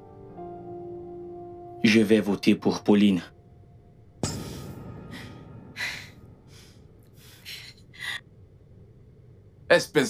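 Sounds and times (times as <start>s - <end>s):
person breathing heavily: 4.2s - 8.2s.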